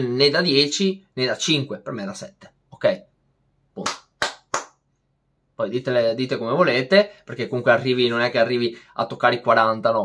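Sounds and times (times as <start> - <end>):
hand claps: 3.8 - 4.9.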